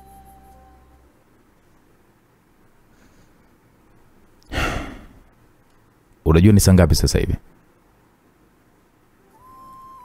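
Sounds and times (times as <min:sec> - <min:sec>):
person sighing: 0:04.5 - 0:05.2.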